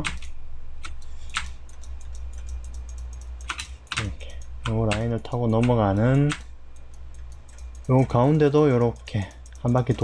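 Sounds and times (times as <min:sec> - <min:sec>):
keyboard and mouse clicks: 0:00.0 - 0:10.0
low electrical hum: 0:00.0 - 0:10.0.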